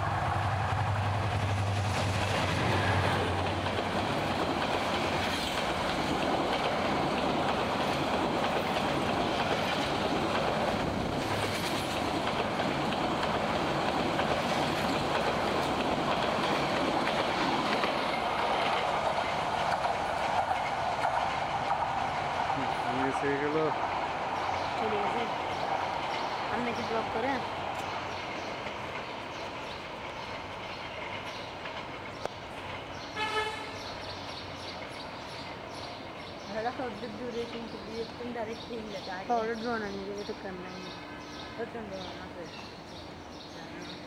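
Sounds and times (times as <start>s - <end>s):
diesel locomotive engine drone: 0.0s - 44.0s
train wheels rumbling on track: 0.0s - 44.0s.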